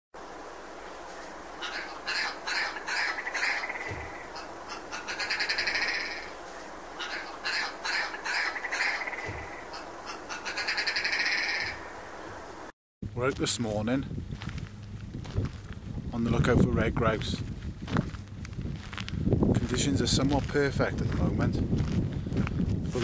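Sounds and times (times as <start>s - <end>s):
grouse calling with rattling trill: 1.1s - 12.4s.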